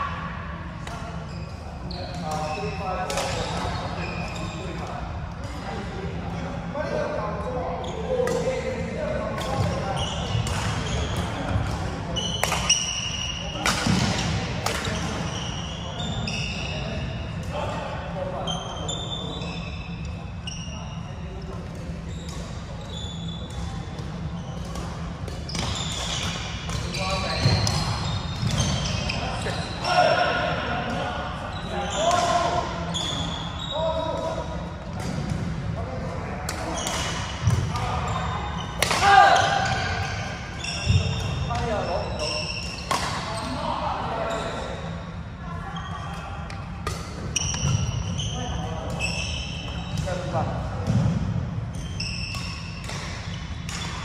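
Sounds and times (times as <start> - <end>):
sneakers squeaking on floor: 0.8 - 5.8, 6.8 - 17.7, 18.3 - 54.0.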